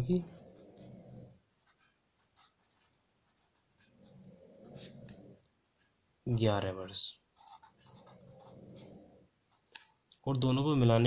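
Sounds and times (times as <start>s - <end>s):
pen writing on paper: 0.2s - 5.4s, 7.4s - 9.7s.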